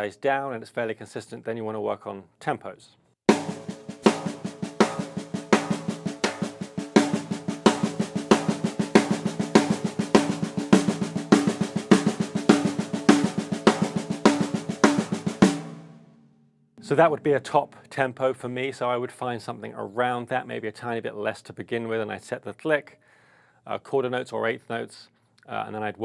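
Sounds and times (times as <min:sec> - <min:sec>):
snare drum struck rapidly: 0:03.3 - 0:16.0.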